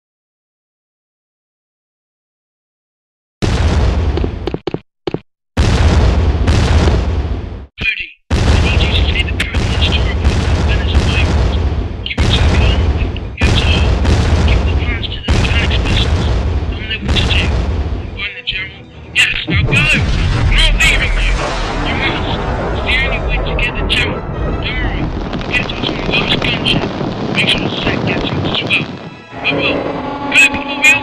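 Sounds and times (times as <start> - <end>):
explosion booms: 3.4 - 4.5, 5.6 - 7.7, 8.3 - 18.2, 19.5 - 29.2.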